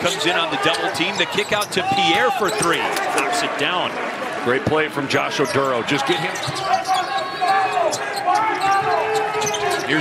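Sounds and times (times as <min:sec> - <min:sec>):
voices in arena: 0:00.0 - 0:10.0.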